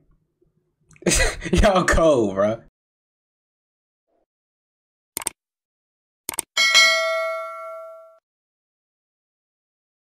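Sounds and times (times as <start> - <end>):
bell ding: 6.6 - 8.2.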